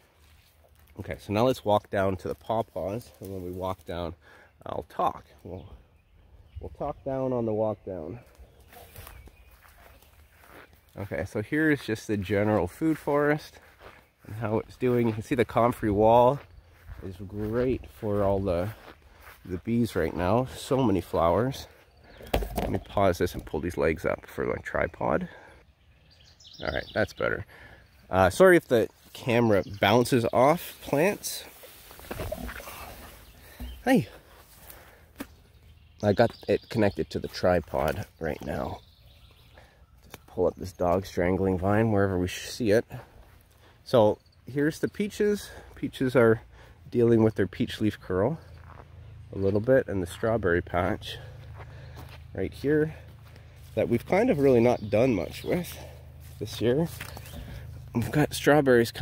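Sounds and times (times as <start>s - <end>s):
footsteps on grass: 0.0s - 1.0s, 8.1s - 23.0s, 28.1s - 42.2s, 42.8s - 43.8s, 48.4s - 58.4s
plants brushing: 55.4s - 57.6s.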